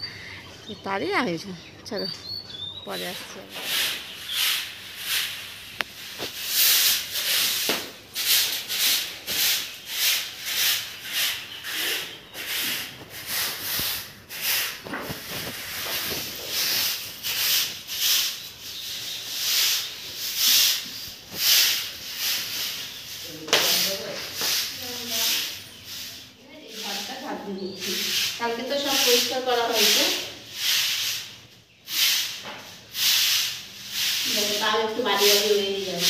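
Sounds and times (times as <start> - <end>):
broom sweeping concrete floor: 3.0 - 36.0.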